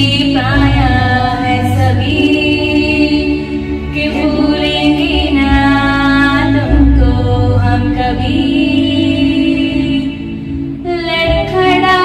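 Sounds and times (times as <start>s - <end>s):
woman singing: 0.0s - 12.0s.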